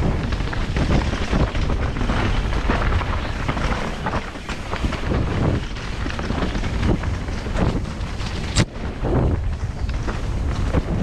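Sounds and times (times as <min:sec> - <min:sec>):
bike knocks and rattles: 0:00.0 - 0:11.0
bike tyres rumbling over ground: 0:00.0 - 0:11.0.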